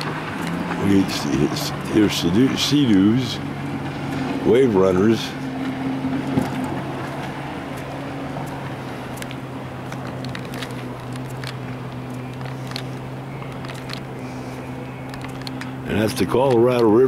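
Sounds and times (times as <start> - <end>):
low motor hum: 0.0 - 17.0
light clicks and crunches: 5.6 - 17.0.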